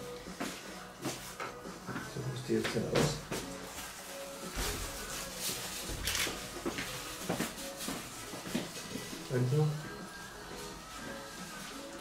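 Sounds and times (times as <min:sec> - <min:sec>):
faint background music: 0:00.0 - 0:12.0
rustling: 0:03.3 - 0:12.0.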